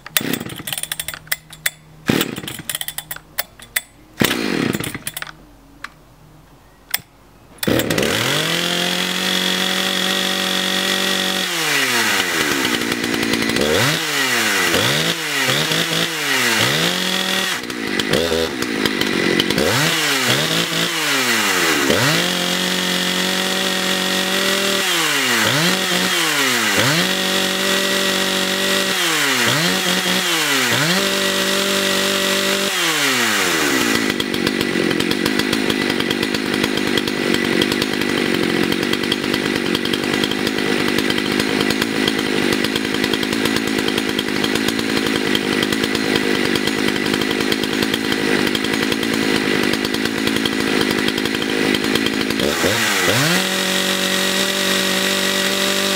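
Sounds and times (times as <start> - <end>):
chainsaw engine revving: 0.0 - 5.4, 7.6 - 55.9
starter cord pulls: 0.0 - 6.0, 6.9 - 8.2.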